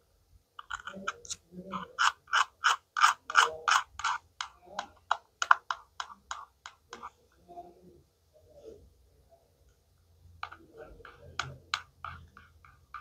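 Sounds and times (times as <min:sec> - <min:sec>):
rasping scratches on plastic toy: 0:00.6 - 0:07.2, 0:10.4 - 0:13.0.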